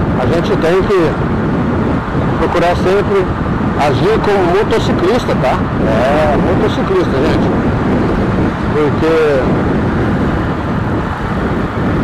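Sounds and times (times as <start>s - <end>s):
motorcycle engine rumble: 0.0s - 12.0s
road noise: 0.0s - 12.0s.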